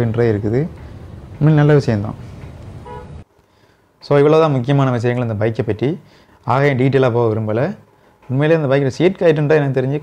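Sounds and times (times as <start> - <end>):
street background noise: 0.0 - 4.0
faint horn toot: 2.8 - 3.3.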